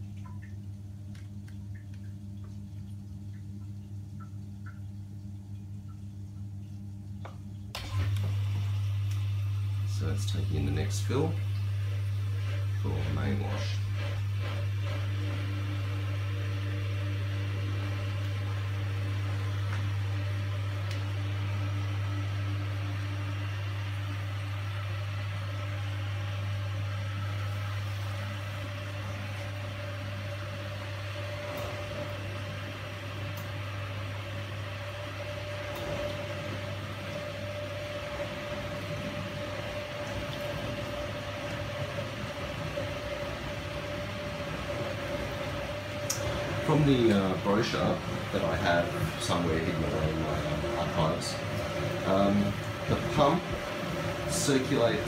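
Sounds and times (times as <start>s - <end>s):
dishwasher low hum: 0.0s - 55.0s.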